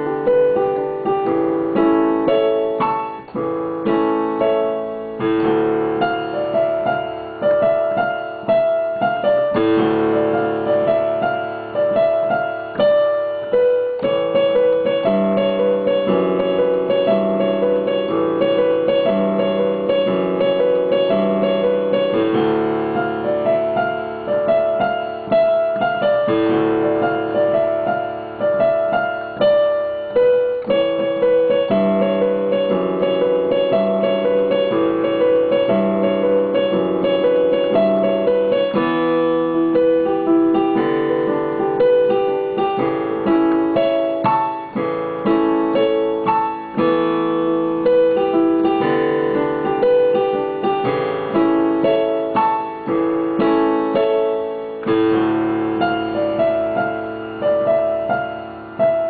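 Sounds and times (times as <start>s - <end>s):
solo piano chords and melody: 0.0s - 59.0s.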